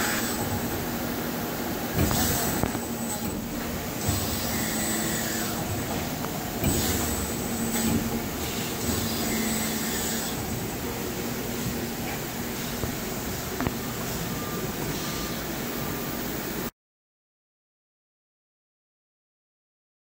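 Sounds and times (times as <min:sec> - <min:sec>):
machinery humming with high whine: 0:00.0 - 0:16.7.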